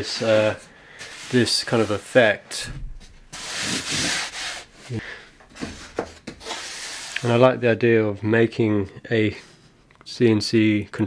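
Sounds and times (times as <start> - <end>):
hand rubbing on wooden panel: 3.3 - 4.8.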